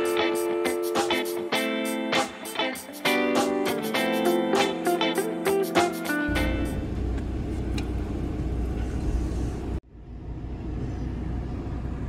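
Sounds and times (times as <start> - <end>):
guitar music: 0.0 - 7.2
road and engine rumble inside car: 6.3 - 12.0.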